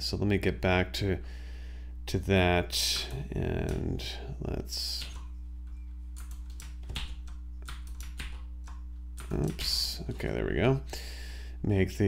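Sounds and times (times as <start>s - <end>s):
low steady hum: 0.0s - 12.0s
computer keyboard keystrokes: 4.9s - 5.3s, 6.1s - 10.3s.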